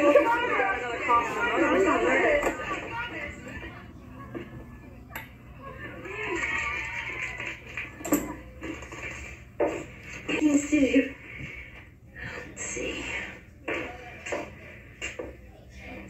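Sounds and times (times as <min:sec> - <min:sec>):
faint music: 0:00.0 - 0:16.0
voices talking indistinctly: 0:00.0 - 0:16.0.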